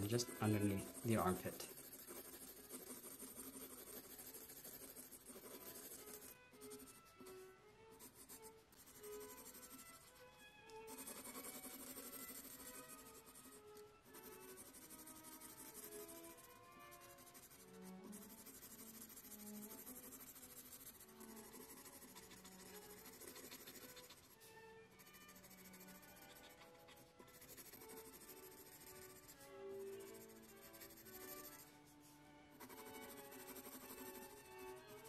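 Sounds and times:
pencil scratching on paper: 0.0s - 35.0s
quiet background music: 0.0s - 35.0s.

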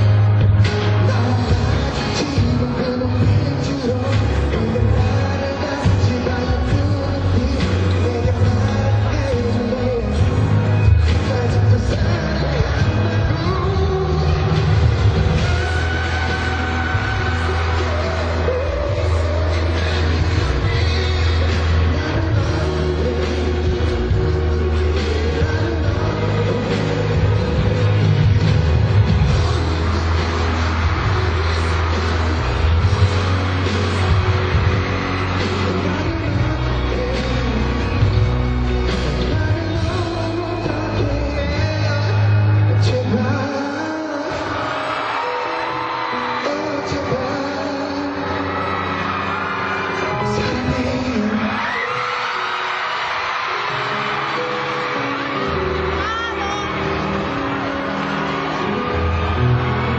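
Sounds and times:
man singing: 0.0s - 52.7s
live pop music through speakers: 0.0s - 59.9s.

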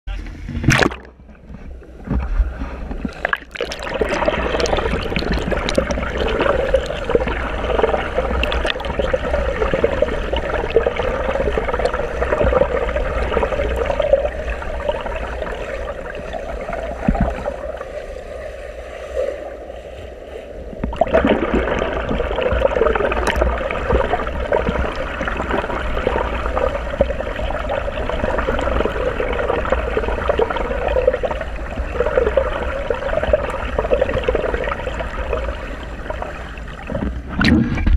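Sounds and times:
underwater splashing of swimmer: 0.5s - 37.9s.

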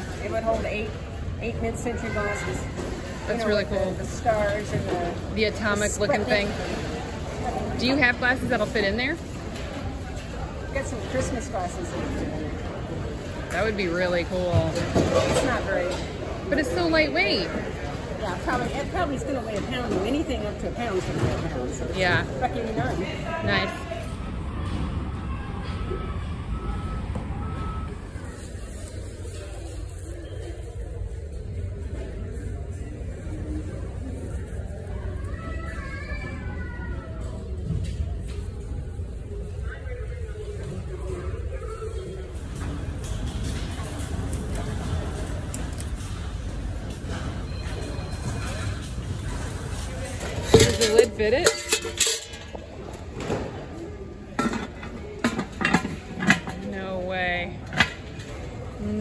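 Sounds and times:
low rumble of store hall: 0.0s - 59.0s
lid and pot clinking: 50.5s - 52.5s.

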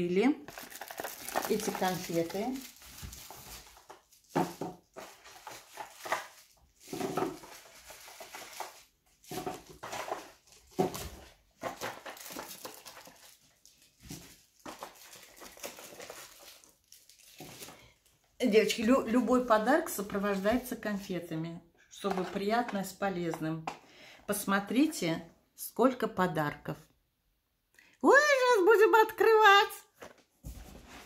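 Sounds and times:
packing paper rustling: 0.5s - 18.1s.

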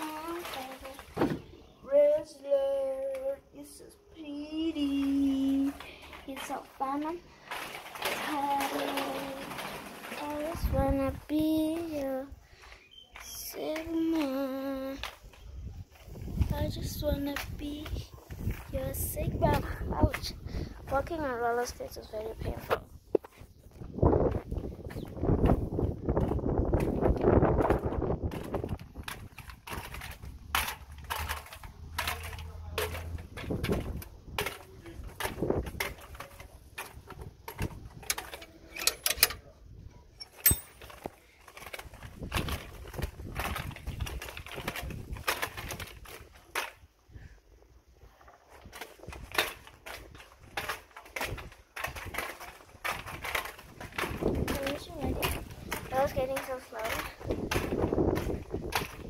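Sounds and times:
roller skates on brick paving: 0.0s - 59.0s.

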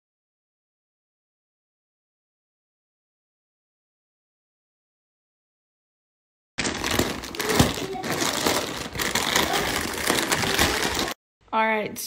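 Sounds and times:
plastic snack bags crinkling: 6.6s - 11.2s.

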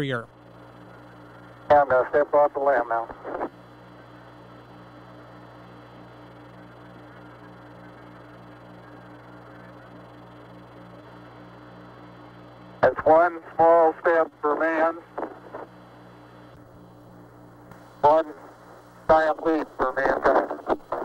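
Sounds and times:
faint regular pulsing: 0.0s - 21.0s
radio hiss and hum: 0.0s - 21.0s.

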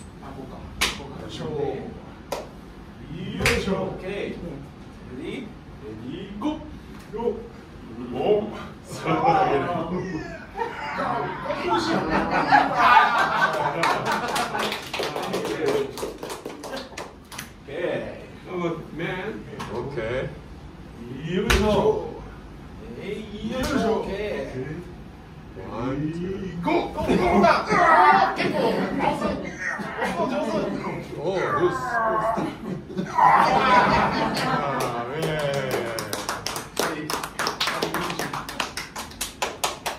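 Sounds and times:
voices and laughter: 8.9s - 14.7s, 26.8s - 35.4s
audience applause: 13.4s - 17.0s, 34.8s - 39.9s
voices: 25.6s - 38.6s.

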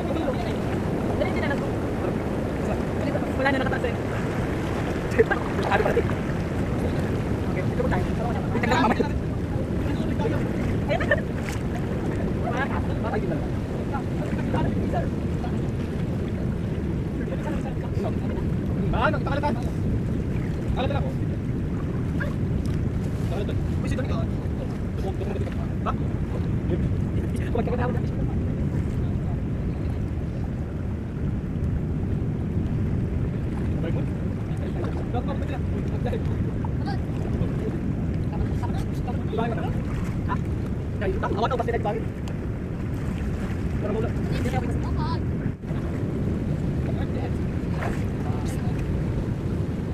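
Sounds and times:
surf washing: 0.0s - 49.9s
wind on microphone: 0.0s - 49.9s.

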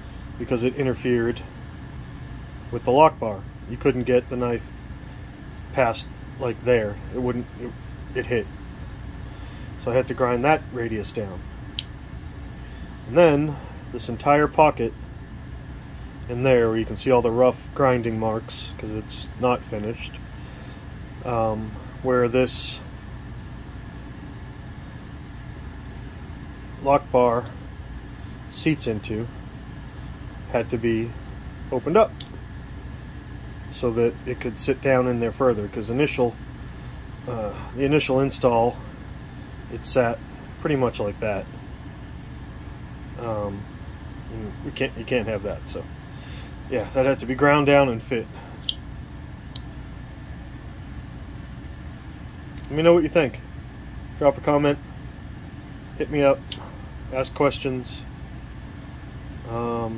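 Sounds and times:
low background hum and hiss: 0.0s - 59.9s.

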